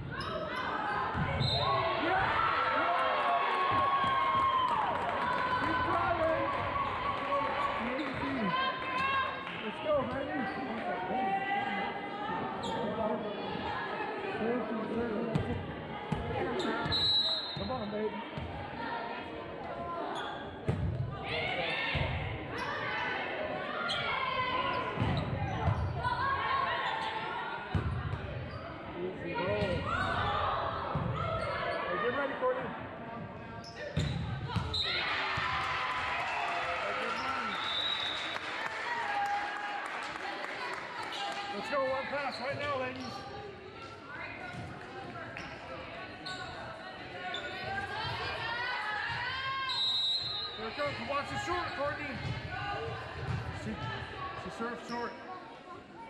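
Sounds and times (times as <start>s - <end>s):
players and spectators calling: 0.0s - 14.7s, 33.8s - 55.3s.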